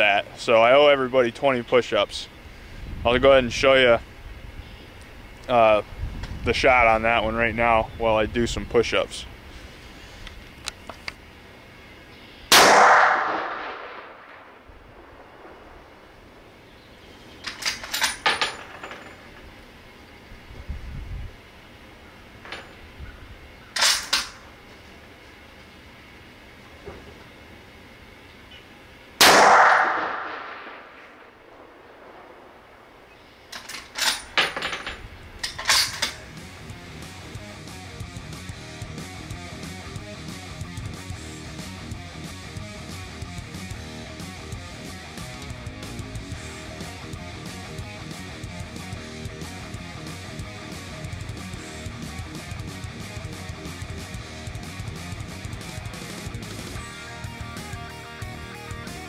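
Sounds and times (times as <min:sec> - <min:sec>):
rifle shots: 0:12.5 - 0:15.7, 0:29.2 - 0:32.8.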